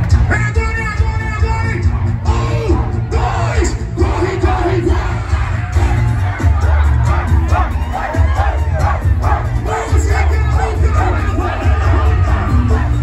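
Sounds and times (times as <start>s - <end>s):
crowd singing and shouting: 0.0s - 13.0s
loud amplified music: 0.0s - 13.0s.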